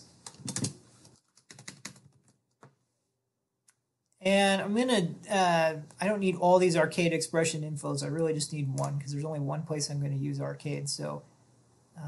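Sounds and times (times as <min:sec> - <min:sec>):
faint keyboard keystrokes: 0:00.2 - 0:02.8.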